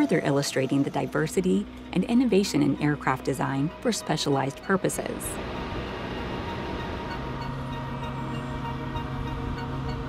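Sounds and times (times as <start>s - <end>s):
aircraft engine rumble and hum: 0.0s - 10.0s.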